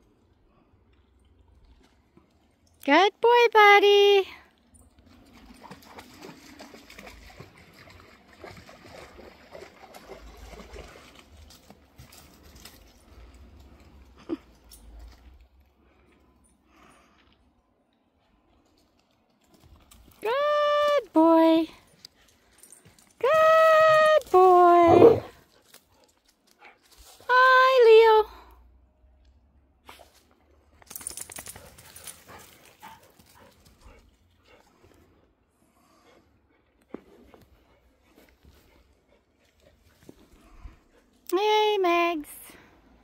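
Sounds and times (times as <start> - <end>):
person calling a dog: 2.9 - 4.4, 20.2 - 21.8, 23.2 - 25.3, 27.3 - 28.3.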